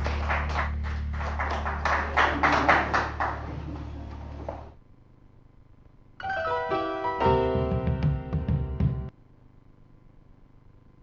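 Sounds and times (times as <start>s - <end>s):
audience applause: 0.0s - 4.8s
low electrical hum: 0.0s - 7.1s, 9.1s - 11.0s.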